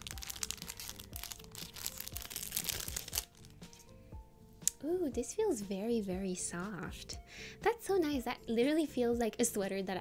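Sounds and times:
plastic bag crinkling: 0.0s - 3.8s
soft background music: 0.0s - 10.0s.

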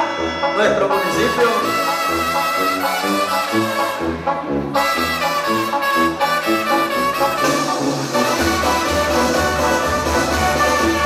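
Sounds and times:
brass instrumental with walking bass: 0.0s - 11.0s.

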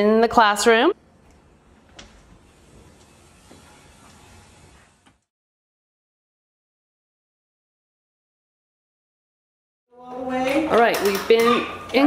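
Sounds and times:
woman speaking: 0.0s - 1.0s, 9.9s - 12.0s.

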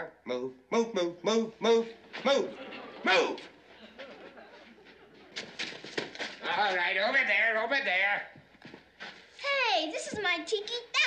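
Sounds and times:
footsteps scuffing on dirt: 8.5s - 9.4s.

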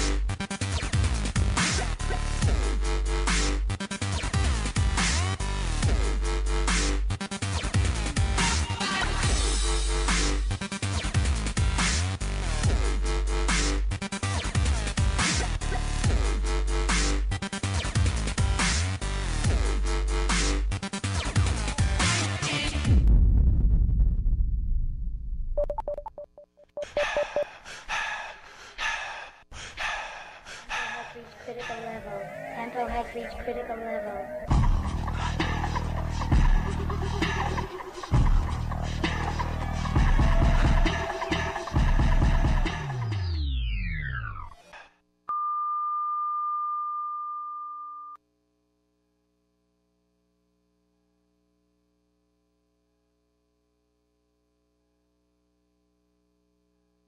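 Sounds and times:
short electronic beeps: 25.6s - 27.5s
deep bass tail: 34.5s - 43.9s.

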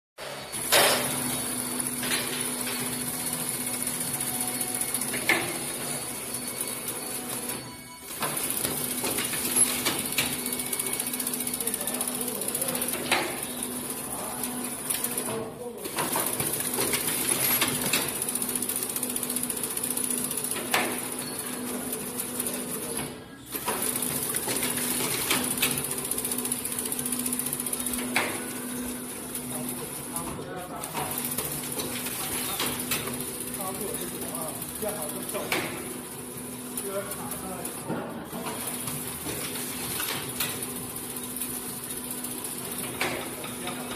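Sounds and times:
high machine whine: 0.2s - 43.9s
machine humming: 0.2s - 43.9s.

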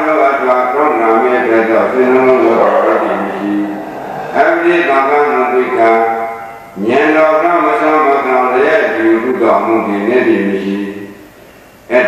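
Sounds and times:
man chanting slowly: 0.0s - 11.2s.

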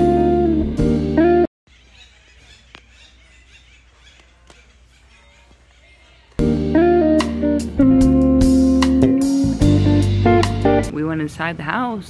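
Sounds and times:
guitar background music: 0.0s - 1.5s, 6.4s - 10.9s.

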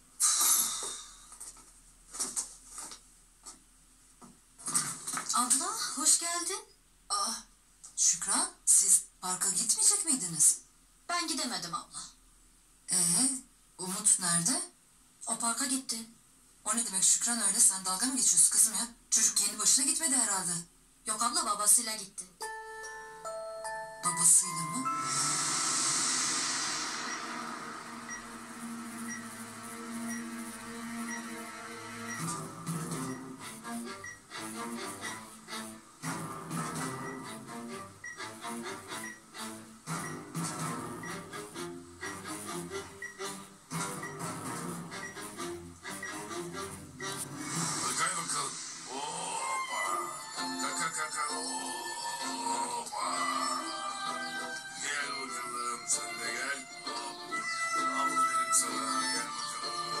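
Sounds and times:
drama soundtrack music: 24.4s - 60.0s.

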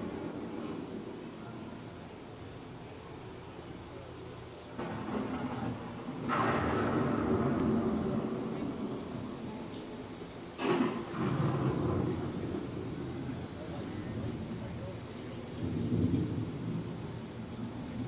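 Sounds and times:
thunder rumbling: 0.0s - 3.5s, 4.6s - 18.0s
sharp thunder crack: 4.8s - 9.7s, 10.6s - 13.7s, 15.6s - 18.0s.

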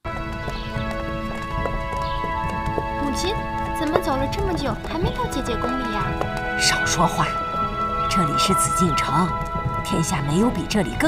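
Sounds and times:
horse hooves on stone: 0.0s - 11.0s
background music of held notes: 0.1s - 11.0s.

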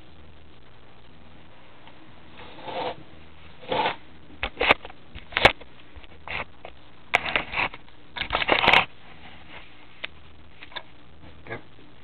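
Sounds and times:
camera handling rustling and scraping: 7.2s - 8.9s.

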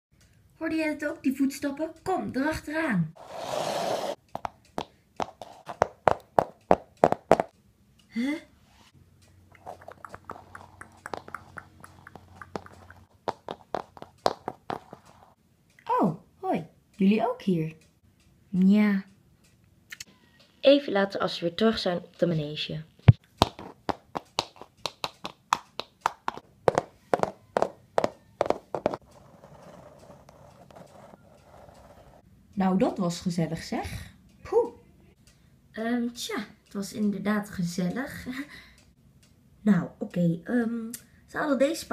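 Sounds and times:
horse hoofbeats clip-clopping: 4.3s - 7.5s, 9.6s - 15.4s, 23.1s - 31.8s
plastic toy tapping on wood: 9.9s - 14.9s, 23.4s - 29.0s.

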